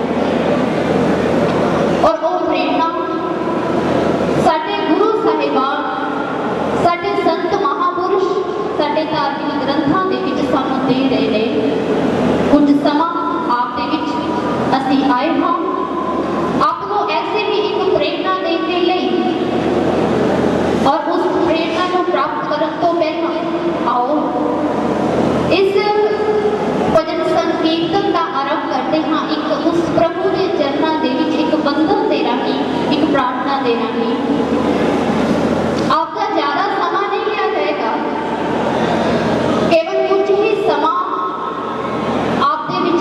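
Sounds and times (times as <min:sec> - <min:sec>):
woman speaking into a microphone: 0:02.0 - 0:03.6, 0:04.4 - 0:11.9, 0:12.5 - 0:19.6, 0:20.8 - 0:24.8, 0:25.5 - 0:34.4, 0:35.8 - 0:38.4, 0:39.7 - 0:41.6, 0:42.4 - 0:43.0.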